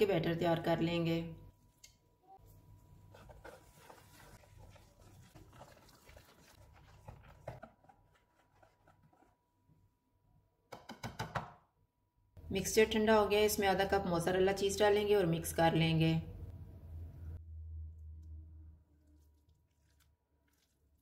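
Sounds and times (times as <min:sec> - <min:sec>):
wire whisk beating batter: 0:03.1 - 0:09.4.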